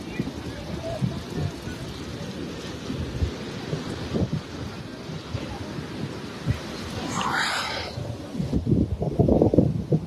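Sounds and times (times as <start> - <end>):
wind buffeting microphone: 0.0 - 10.0
surf hissing: 2.3 - 8.6.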